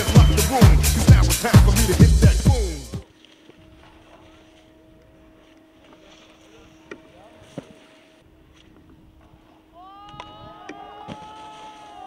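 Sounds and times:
voices whooping: 0.0s - 0.9s, 9.7s - 12.0s.

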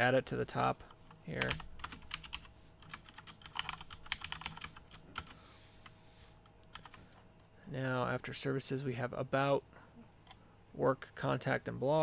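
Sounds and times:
computer keyboard typing: 1.4s - 5.4s, 6.6s - 7.0s.

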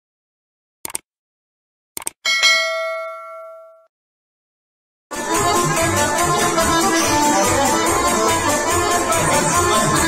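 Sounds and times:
quick clicks: 0.8s - 1.1s, 2.0s - 2.2s
bell-like notification ding: 2.3s - 3.9s.

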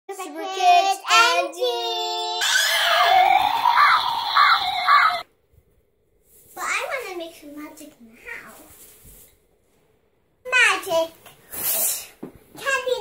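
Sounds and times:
children's sliding calls: 2.4s - 5.2s
high shrieking: 2.4s - 5.2s
repeated squeals: 2.4s - 5.2s.

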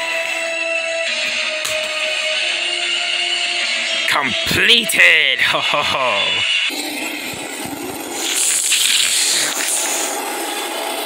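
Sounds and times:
background music with held notes: 0.0s - 6.7s.

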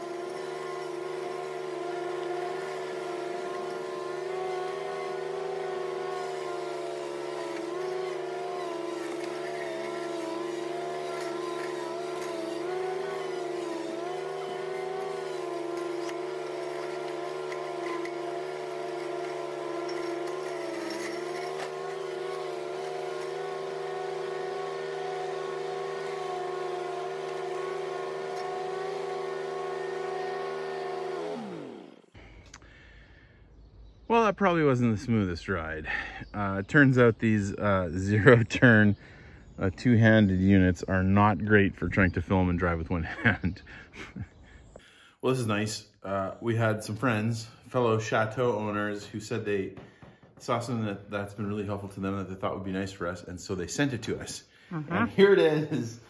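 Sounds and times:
ride-on mower engine running: 0.0s - 32.3s.

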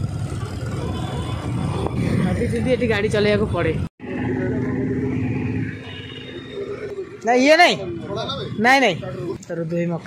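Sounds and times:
motorcycle engine running: 0.0s - 7.2s.

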